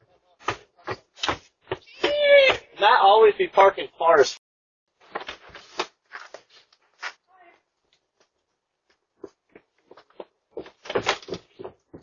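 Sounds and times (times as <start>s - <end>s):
person speaking: 1.8s - 4.4s
footsteps on wooden steps: 9.2s - 12.0s.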